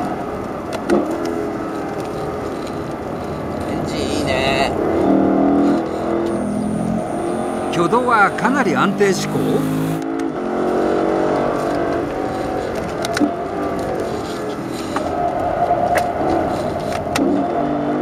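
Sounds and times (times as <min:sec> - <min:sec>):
car engine downshifting: 0:00.0 - 0:18.0.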